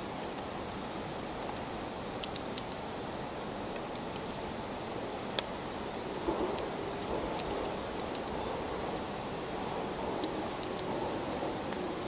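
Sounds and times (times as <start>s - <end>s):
steady rushing outdoor noise: 0.0s - 12.0s
faint sharp clicks: 0.2s - 2.8s, 5.3s - 8.4s, 9.4s - 11.9s.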